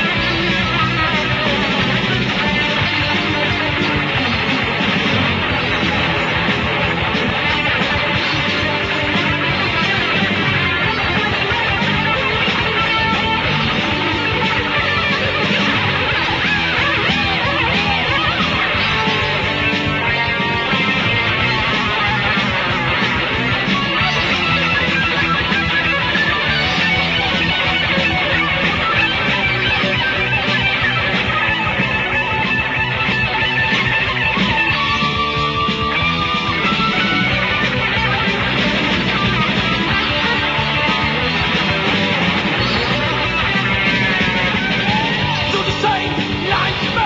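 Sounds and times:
heavy metal band playing: 0:00.0 - 0:47.0
lead guitar bending notes: 0:00.0 - 0:47.0.

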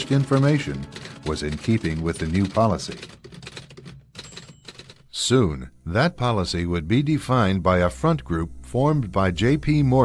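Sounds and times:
typewriter keys clacking: 0:00.0 - 0:05.1
faint low hum: 0:04.5 - 0:10.0.

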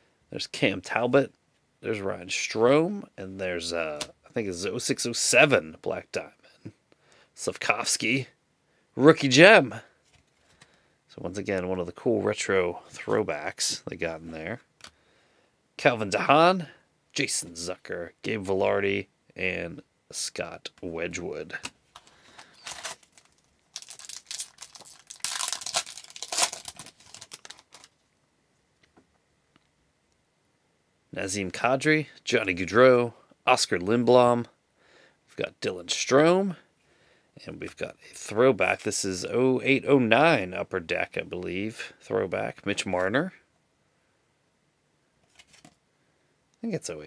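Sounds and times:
person speaking: 0:11.1 - 0:14.7, 0:15.8 - 0:21.8
card pack wrapper tearing: 0:22.0 - 0:28.0.

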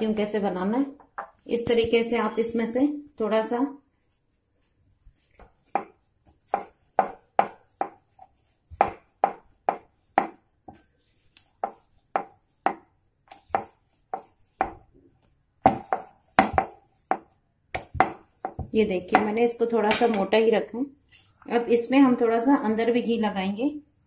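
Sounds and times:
rolling pin knocking on board: 0:05.7 - 0:08.0, 0:08.7 - 0:10.4, 0:11.6 - 0:14.8, 0:15.6 - 0:19.3.

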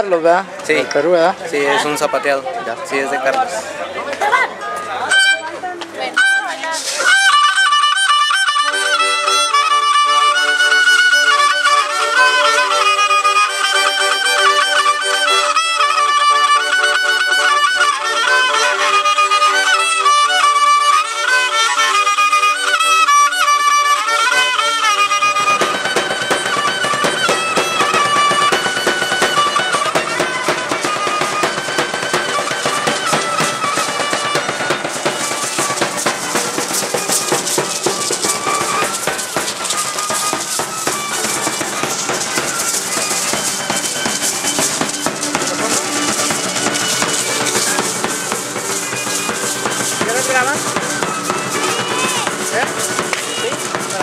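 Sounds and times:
accordion chords: 0:00.0 - 0:54.0
violin melody: 0:04.8 - 0:54.0
rattling beating texture: 0:06.2 - 0:54.0.

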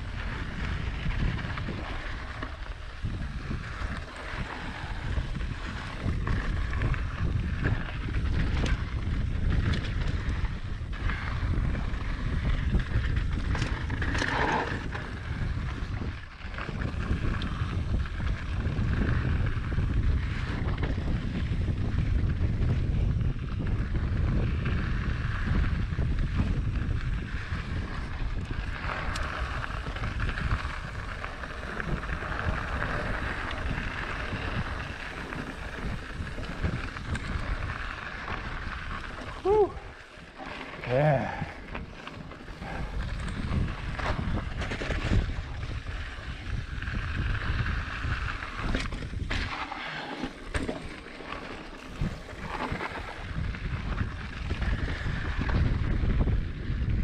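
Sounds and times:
wind on microphone: 0:00.0 - 0:40.1, 0:40.8 - 0:50.8, 0:51.4 - 0:57.0
bike rattling: 0:00.0 - 0:57.0
bike tyres rumbling on dirt: 0:00.0 - 0:57.0.

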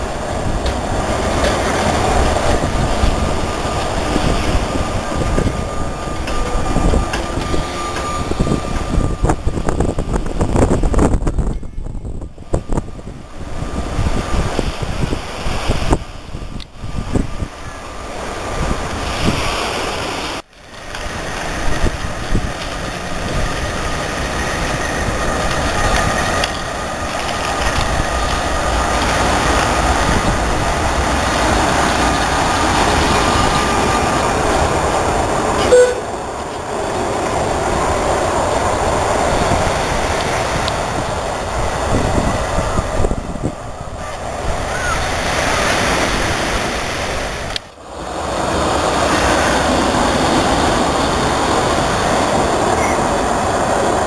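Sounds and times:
tram wheels rumbling on rails: 0:00.0 - 0:54.0
brief sharp sound: 0:35.6 - 0:36.1.

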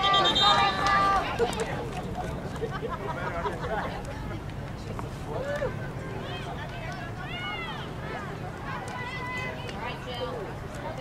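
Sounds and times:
voices calling out: 0:00.0 - 0:04.4
outdoor background noise: 0:00.0 - 0:11.0.

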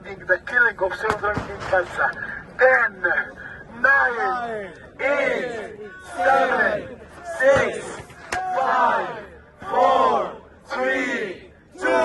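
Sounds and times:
crowd shouting in unison: 0:04.1 - 0:12.0.

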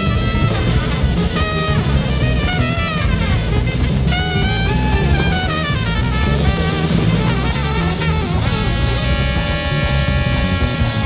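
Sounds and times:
drum kit: 0:00.0 - 0:11.0
horn holding long high note: 0:00.0 - 0:11.0
walking bass: 0:00.0 - 0:11.0.

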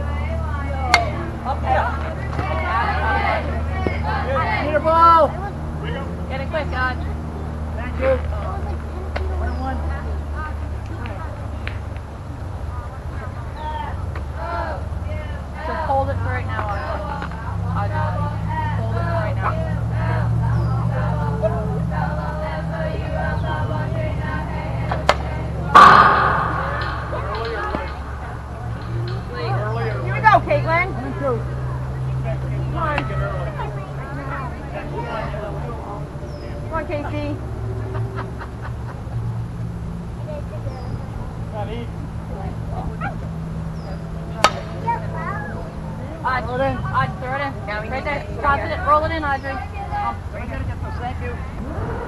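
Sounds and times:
spectators chatting: 0:00.0 - 0:52.0
steady low rumble: 0:21.3 - 0:29.7
sharp crack: 0:25.1 - 0:29.3, 0:44.4 - 0:44.9
loud sudden impact: 0:25.7 - 0:28.3.

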